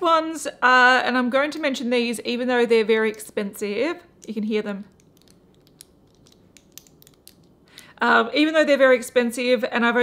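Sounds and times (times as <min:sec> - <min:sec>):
metal lipstick cases clicking: 0:04.9 - 0:07.9.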